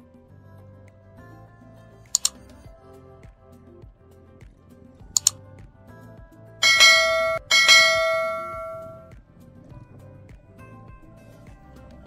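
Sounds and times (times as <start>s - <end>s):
bright bell ringing: 6.6s - 9.1s.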